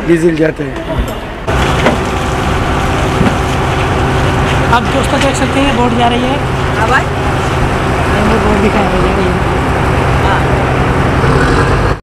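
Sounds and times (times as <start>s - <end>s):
boat diesel engine droning: 1.1s - 12.0s.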